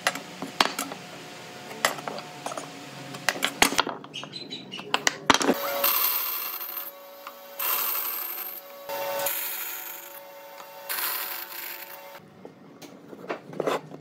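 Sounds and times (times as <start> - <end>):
band saw blade cutting wood: 5.5 - 12.2
band saw motor hum: 5.5 - 12.2.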